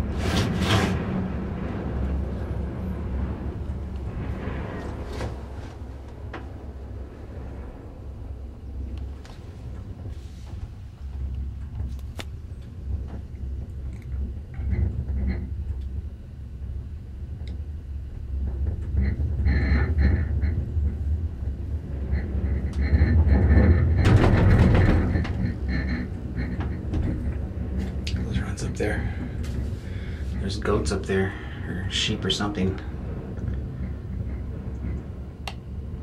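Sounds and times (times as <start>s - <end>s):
cable car cabin rumble and rattle: 0.0s - 36.0s.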